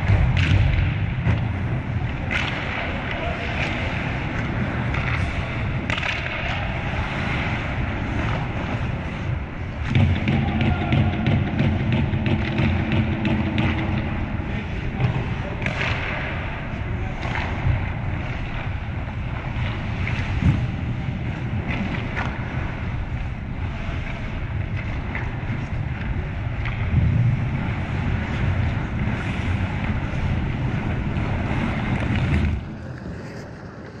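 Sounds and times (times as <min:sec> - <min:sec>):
steady low rumbling: 0:00.0 - 0:34.0.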